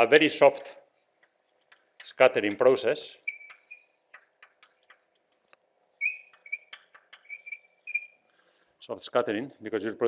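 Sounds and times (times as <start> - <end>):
chalk squeaks: 0.7 - 8.3
chalk tapping on blackboard: 0.8 - 8.1.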